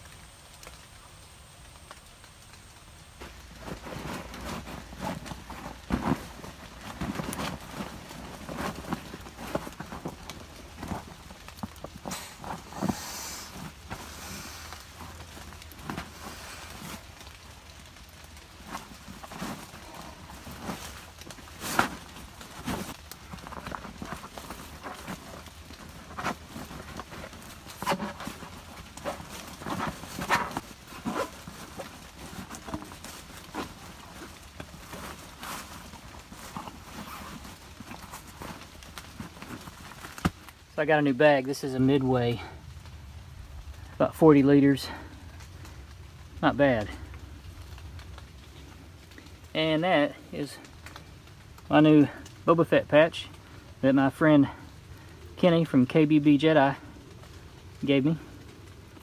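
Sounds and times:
dry bag rustling: 2.4s - 42.8s.

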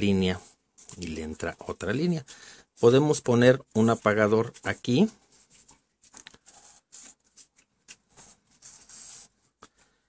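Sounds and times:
marker scratching on paper: 6.4s - 9.4s.

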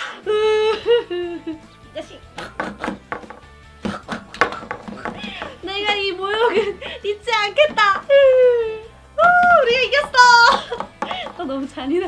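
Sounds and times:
background music: 0.0s - 12.0s
toy figure knocking on table: 2.5s - 5.6s.

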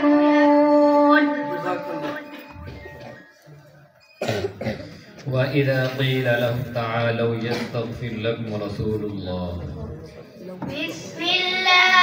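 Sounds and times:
loud cough: 4.2s - 5.2s, 7.5s - 8.0s.

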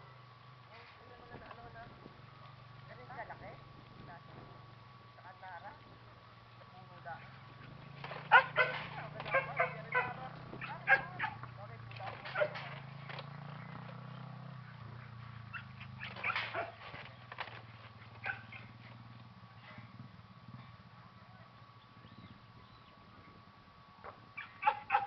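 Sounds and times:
low steady hum: 0.0s - 25.0s.

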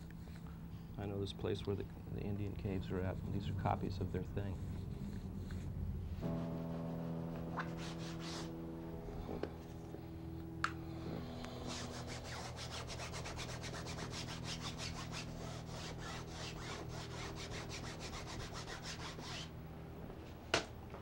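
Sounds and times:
brush rubbing wooden panel: 3.9s - 8.6s, 11.5s - 19.5s.

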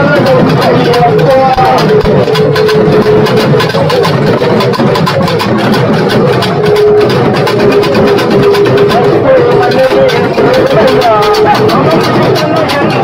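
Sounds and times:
drum band playing fast rhythm: 0.0s - 13.0s
held melodic note: 0.0s - 13.0s.

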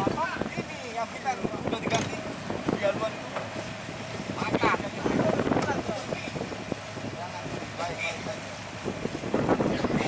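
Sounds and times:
boat engine hum: 0.0s - 10.0s.

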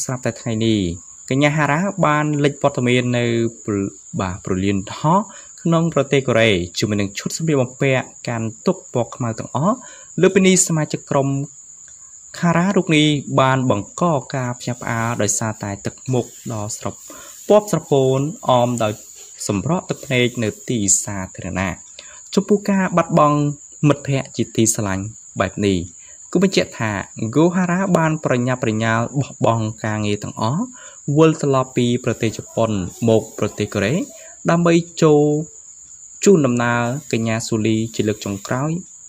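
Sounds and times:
man narrating: 0.0s - 11.5s, 12.4s - 35.5s, 36.2s - 38.9s
faint high-pitched whine: 0.0s - 39.0s
high-pitched whine: 14.4s - 21.8s, 31.4s - 34.6s.

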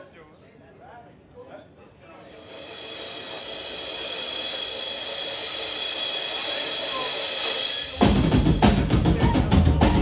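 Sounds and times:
drums and full band crashing: 2.2s - 10.0s.

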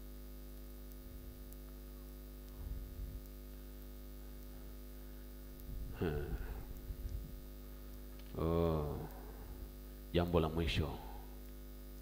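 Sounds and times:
electrical mains hum: 0.0s - 12.0s
short vocal sound falling pitch: 5.8s - 6.7s.

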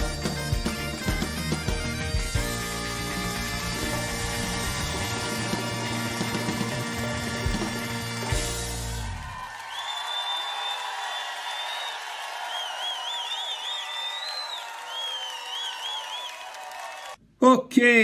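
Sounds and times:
bagpipe rock band playing: 0.0s - 9.3s
crowd cheering and applauding: 0.0s - 17.2s
people whistling: 9.5s - 17.2s.

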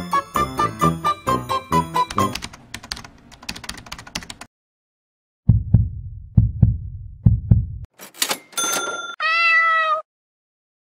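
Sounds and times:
low heartbeat-like thumps: 5.5s - 7.9s
cat meowing: 9.2s - 10.1s.

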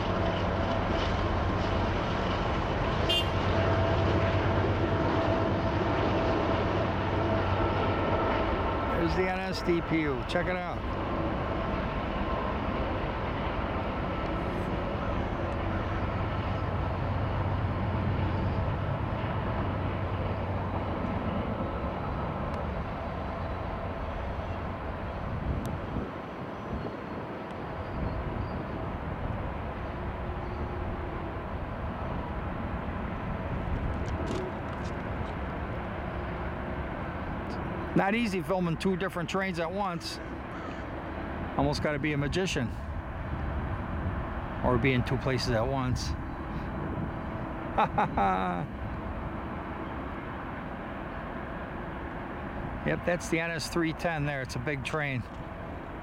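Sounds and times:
diesel locomotive engine drone: 0.0s - 56.0s
rail cars rumbling: 0.0s - 56.0s.

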